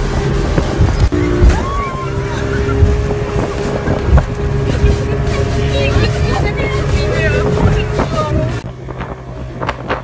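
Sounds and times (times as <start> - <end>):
boat engine running: 0.0 - 10.0
voices: 1.1 - 8.6.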